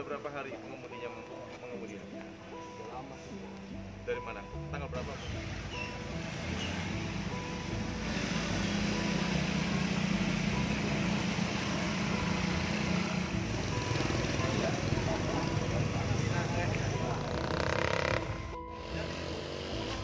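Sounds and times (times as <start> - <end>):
street noise: 0.0 - 20.0
motorcycle engines passing: 5.1 - 20.0.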